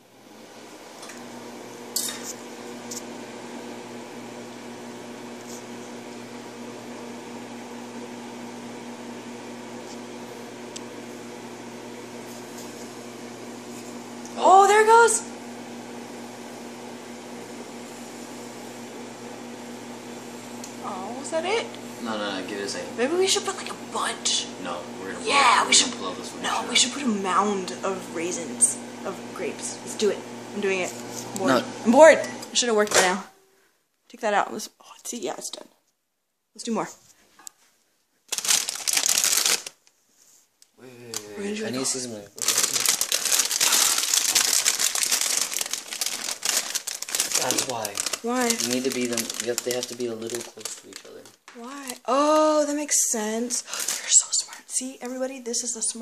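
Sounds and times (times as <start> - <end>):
microwave oven humming: 0.0 - 33.4, 40.8 - 54.4
plastic bag crinkling: 38.3 - 39.9, 42.4 - 52.6, 53.4 - 54.5.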